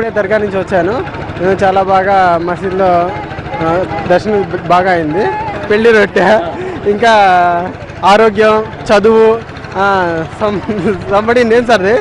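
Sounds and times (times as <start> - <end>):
man talking into microphone: 0.0 - 12.0
steady background noise: 0.0 - 12.0.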